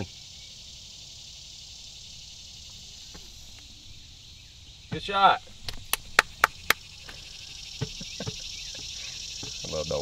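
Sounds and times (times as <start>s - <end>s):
insect chorus buzzing: 0.0s - 10.0s.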